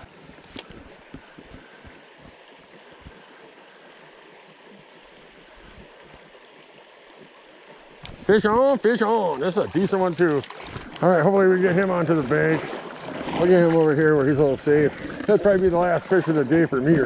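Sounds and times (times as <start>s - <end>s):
creek water running: 0.0s - 17.0s.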